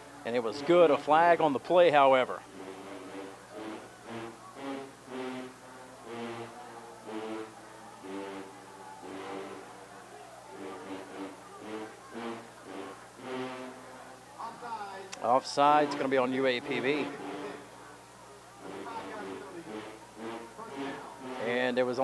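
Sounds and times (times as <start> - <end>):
brass band playing faintly: 0.0 - 22.0.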